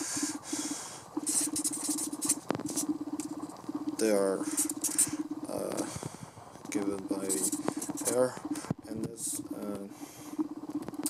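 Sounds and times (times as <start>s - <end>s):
marker scratching on paper: 1.2s - 3.4s, 4.4s - 5.2s, 7.2s - 8.2s.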